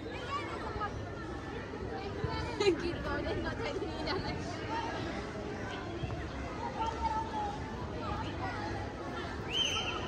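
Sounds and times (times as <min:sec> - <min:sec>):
players and spectators chattering: 0:00.0 - 0:10.0.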